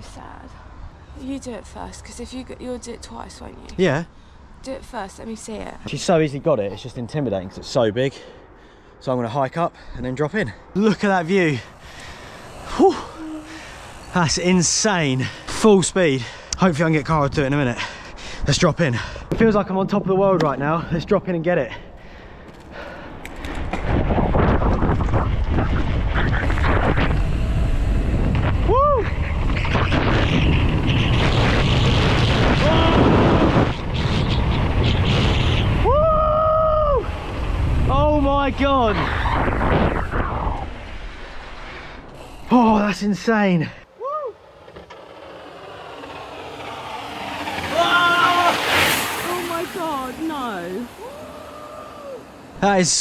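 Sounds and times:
bike tyres rumbling on concrete: 0:11.4 - 0:16.7, 0:22.1 - 0:41.4, 0:44.0 - 0:52.5
person whooping: 0:12.7 - 0:13.7, 0:28.7 - 0:29.2, 0:35.8 - 0:37.1, 0:44.0 - 0:44.4, 0:47.7 - 0:48.6, 0:50.9 - 0:52.4
wind buffeting microphone: 0:21.9 - 0:43.1
man exclaiming woo: 0:28.7 - 0:29.1, 0:35.8 - 0:37.1, 0:44.0 - 0:44.4, 0:47.7 - 0:48.6, 0:49.2 - 0:52.3.

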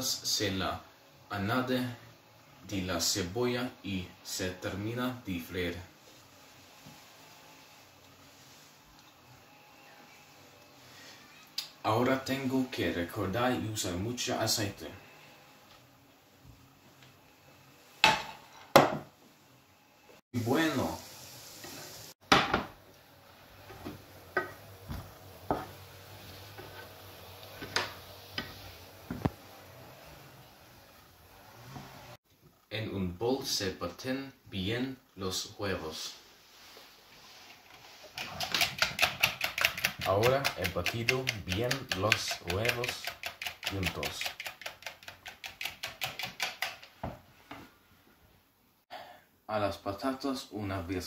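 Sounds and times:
potatoes frying in oil: 0:20.4 - 0:22.1
whisk beating eggs in plastic bowl: 0:38.0 - 0:46.9.

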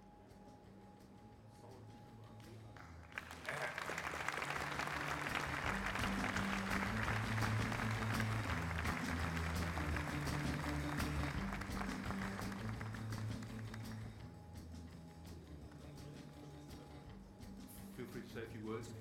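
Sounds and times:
ceremony music with stepping bass: 0:02.4 - 0:18.0
audience applauding: 0:02.8 - 0:14.2.

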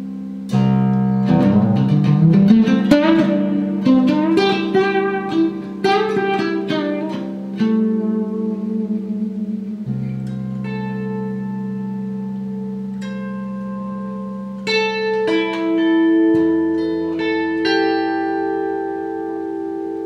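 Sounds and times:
held bass notes: 0:00.0 - 0:20.0
plucked electric guitar melody: 0:00.0 - 0:20.0.

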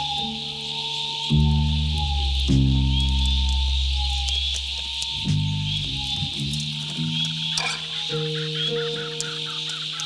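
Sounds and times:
chorus of calling animals: 0:00.0 - 0:10.0.

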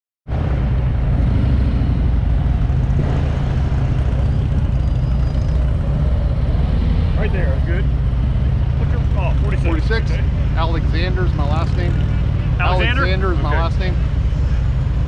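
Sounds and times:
motorcycle engine rumbling: 0:00.3 - 0:15.0
person speaking: 0:12.5 - 0:14.0.

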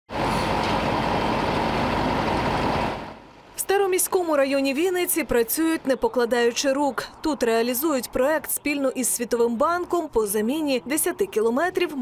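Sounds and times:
heavy machine engine running: 0:00.1 - 0:03.5.

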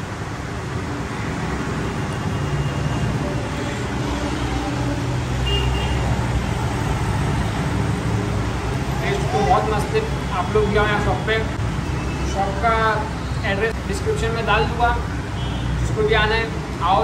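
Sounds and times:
road traffic noise: 0:00.0 - 0:17.0.

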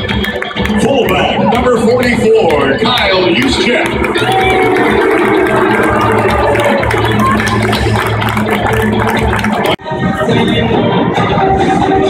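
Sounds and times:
loud music over stadium speakers: 0:00.0 - 0:12.0.

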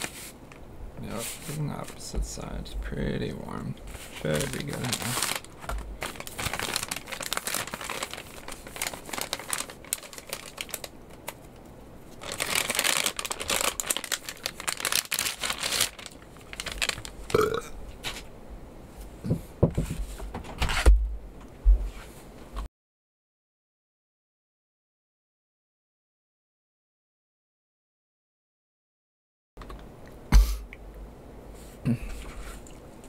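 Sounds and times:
plastic and foil packaging crinkling: 0:03.9 - 0:18.3.

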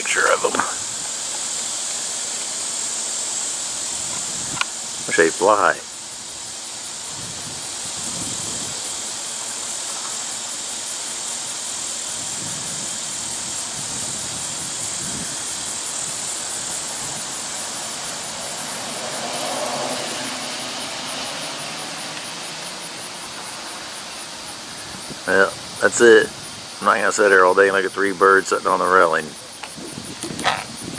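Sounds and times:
broad rushing swell: 0:00.0 - 0:27.5
high-pitched insect buzz: 0:00.0 - 0:30.9
outdoor background noise: 0:00.0 - 0:30.9.

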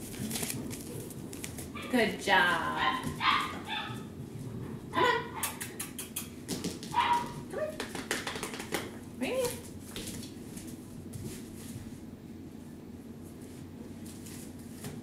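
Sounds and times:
puppy barking and yipping: 0:02.8 - 0:04.1, 0:06.9 - 0:07.4.

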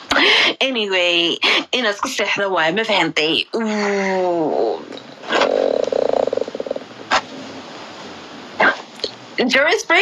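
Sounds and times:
croaking throat sound: 0:04.6 - 0:07.2.

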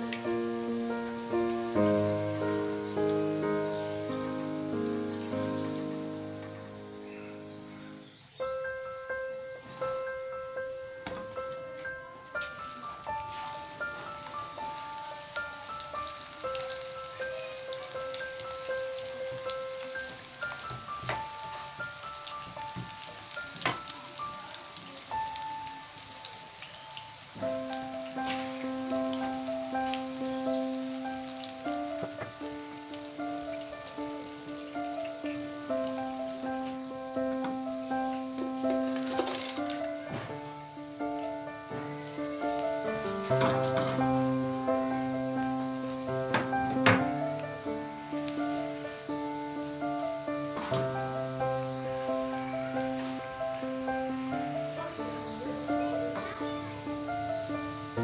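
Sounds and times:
batter sizzling in hot oil: 0:00.0 - 0:10.3, 0:11.0 - 0:58.0
background music of held notes: 0:00.0 - 0:58.0.

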